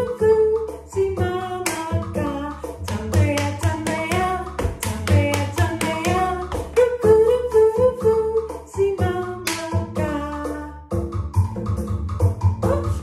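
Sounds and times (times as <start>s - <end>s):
woman singing: 0.0s - 10.9s, 12.6s - 13.0s
instrumental accompaniment with beat: 0.0s - 13.0s
hand claps and slaps: 1.6s - 2.0s, 2.9s - 6.8s, 9.4s - 9.8s.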